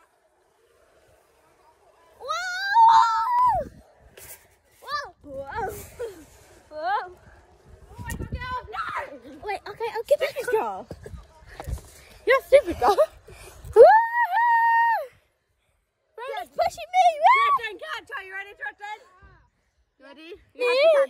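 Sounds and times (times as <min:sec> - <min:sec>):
child yelling and whooping: 0:02.2 - 0:03.7, 0:17.0 - 0:17.7
wind rumble on microphone: 0:05.2 - 0:09.2.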